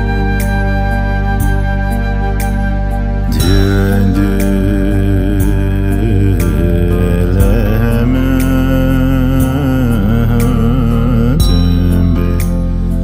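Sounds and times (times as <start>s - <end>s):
sustained low accompaniment: 0.0s - 13.0s
solo voice chanting: 3.3s - 12.5s.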